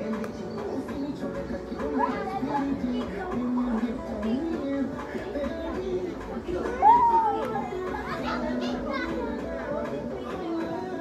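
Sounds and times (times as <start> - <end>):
children chattering and calling: 0.0 - 11.0.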